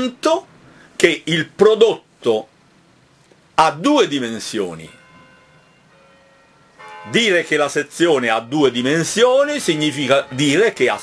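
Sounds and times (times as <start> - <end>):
faint bell-like ringing tones: 4.1 - 11.0.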